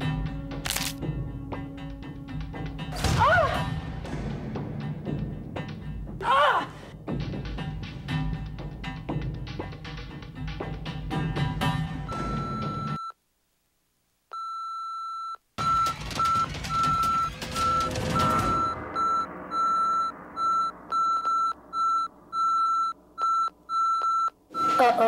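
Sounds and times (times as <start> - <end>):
high electronic beeps: 15.6 - 25.0.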